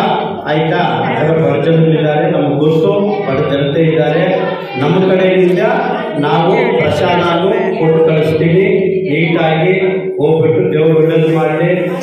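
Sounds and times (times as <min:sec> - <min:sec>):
man chanting through loudspeaker: 0:00.0 - 0:12.0.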